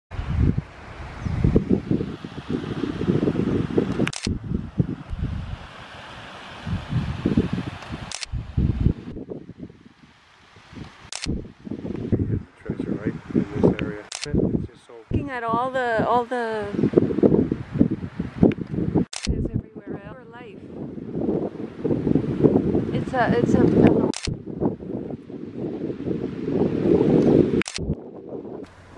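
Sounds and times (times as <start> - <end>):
wind buffeting microphone: 0.1 - 5.9, 6.5 - 28.9
short sharp clicks: 3.9 - 4.3, 7.8 - 8.3, 11.1 - 11.4, 24.1 - 24.4, 27.6 - 27.9.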